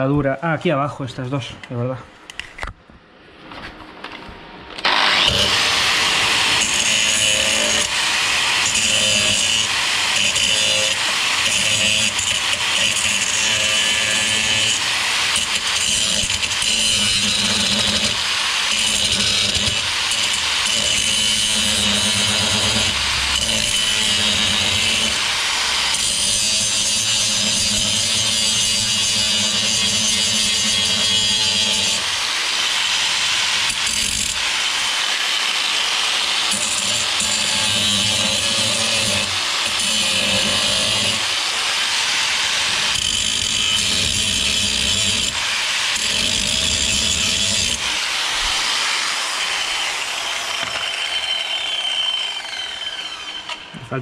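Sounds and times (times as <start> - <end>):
angle grinder grinding metal: 4.8 - 54.0.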